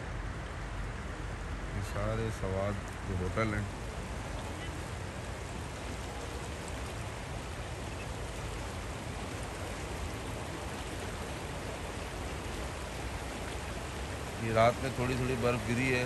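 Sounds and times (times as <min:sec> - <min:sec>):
river rushing over stones: 0:00.0 - 0:16.0.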